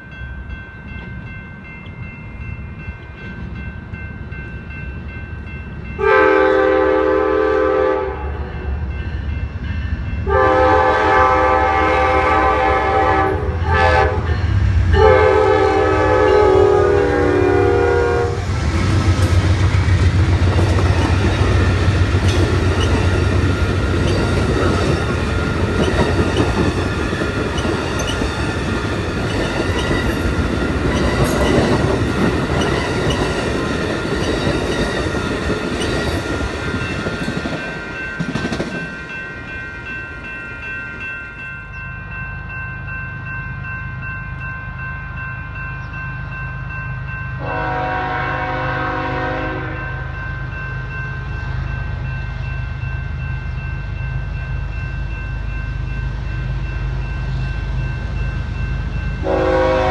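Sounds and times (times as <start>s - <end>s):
train engine rumbling: 0.0s - 59.9s
train horn blasts: 6.0s - 8.8s, 10.2s - 18.6s, 47.4s - 50.2s, 59.2s - 59.9s
wheels clicking over rail joints: 18.6s - 39.0s.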